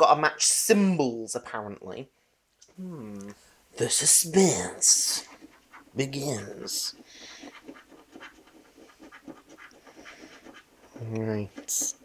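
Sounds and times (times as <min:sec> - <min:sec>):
coin scratching a scratchcard: 0:04.3 - 0:12.0.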